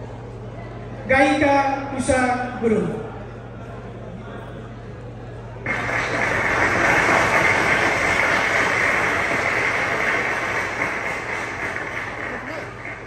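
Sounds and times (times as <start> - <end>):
audience applauding: 5.7 - 13.0.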